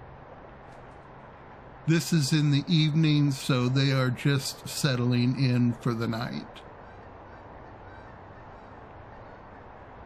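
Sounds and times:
steady outdoor microphone hiss: 0:00.0 - 0:10.0
faint bird calls: 0:05.9 - 0:10.0.

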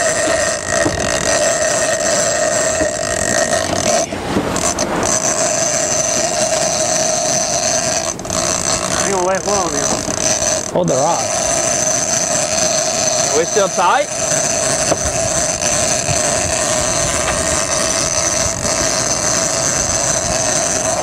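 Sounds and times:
boat machinery drone: 0:00.0 - 0:21.0
sea noise: 0:00.0 - 0:21.0
wind: 0:00.0 - 0:21.0.

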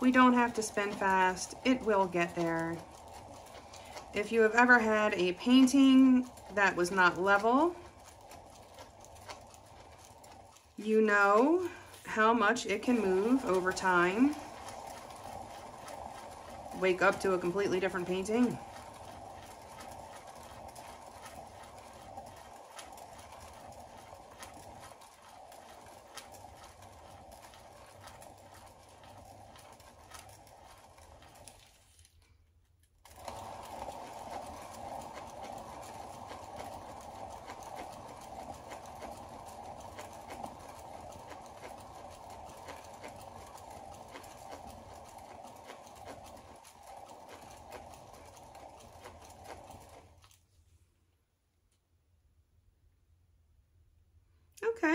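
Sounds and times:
spinner whirring: 0:00.0 - 0:50.8.

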